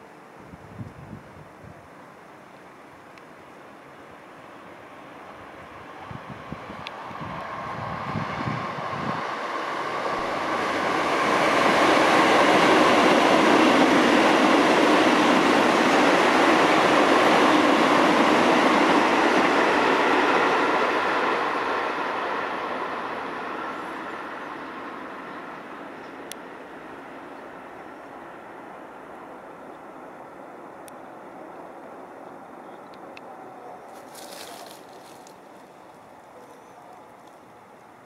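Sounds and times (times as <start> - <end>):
electric train passing: 2.1 - 38.0.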